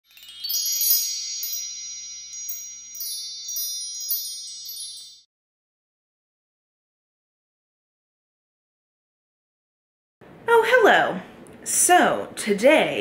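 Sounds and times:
high shimmering chimes: 0.0s - 5.3s.

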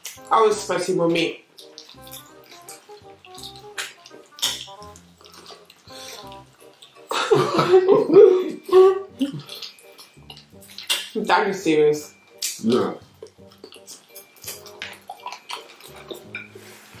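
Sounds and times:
soft background music: 0.0s - 17.0s
wet chewing and sucking: 1.5s - 7.3s, 8.6s - 11.2s, 12.3s - 17.0s
mouth clicks: 1.6s - 7.0s, 12.3s - 16.3s.

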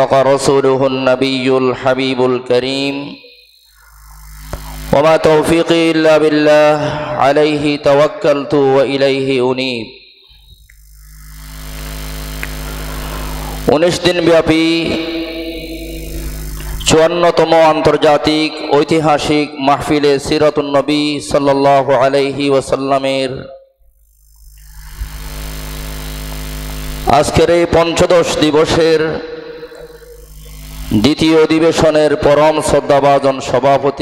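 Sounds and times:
electrical hum from sound system: 0.0s - 34.0s.

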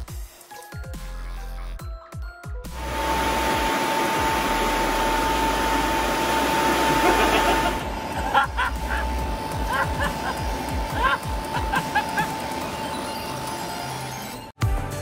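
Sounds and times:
electric fans running: 2.7s - 14.5s.

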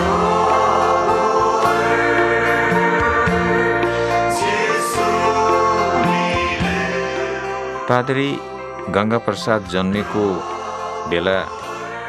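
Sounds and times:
choir singing worship song: 0.0s - 12.0s
held chords and bass line: 0.0s - 12.0s.

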